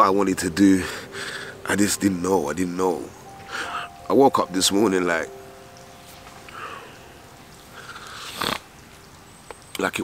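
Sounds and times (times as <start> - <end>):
man breathing tearfully: 0.8 - 1.7, 3.4 - 4.0, 6.5 - 8.4.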